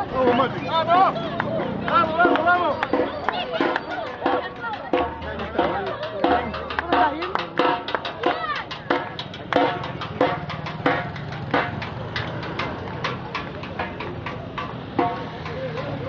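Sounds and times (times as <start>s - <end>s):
crowd singing and shouting: 0.0s - 9.2s
drums beating quick rhythm: 0.0s - 16.0s.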